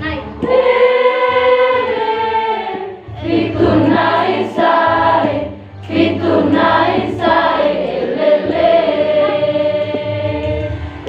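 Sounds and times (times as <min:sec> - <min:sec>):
women's choir holding a long note: 0:00.0 - 0:11.0.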